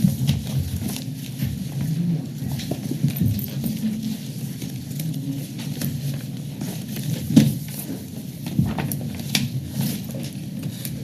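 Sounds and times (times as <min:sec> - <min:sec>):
papers rustling: 0:00.0 - 0:11.0.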